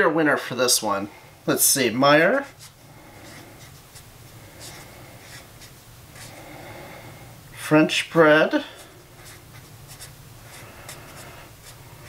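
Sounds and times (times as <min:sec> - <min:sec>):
pen scratching on label: 0:02.4 - 0:06.4, 0:08.8 - 0:12.0.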